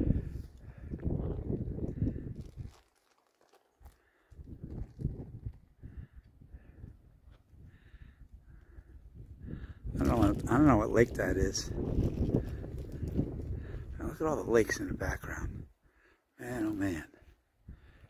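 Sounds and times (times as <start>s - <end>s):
wind buffeting microphone: 0.0s - 2.8s, 4.3s - 15.8s.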